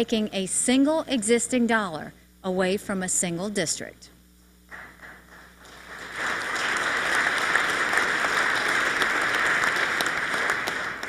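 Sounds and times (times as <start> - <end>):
crowd applauding: 5.0 - 11.0.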